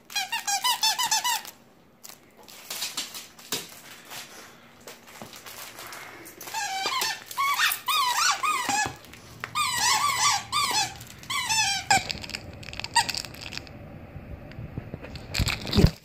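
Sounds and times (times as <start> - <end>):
dog toy squeaking: 0.1 - 1.5, 6.5 - 13.6.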